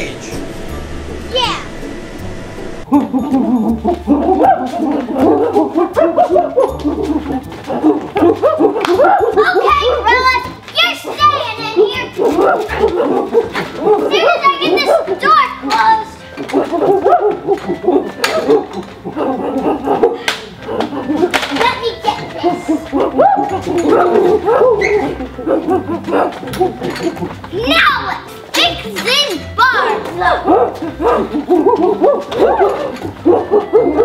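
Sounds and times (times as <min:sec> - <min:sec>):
people hooting and grunting: 0:02.8 - 0:28.1, 0:29.7 - 0:34.0
people talking and laughing: 0:02.8 - 0:34.0.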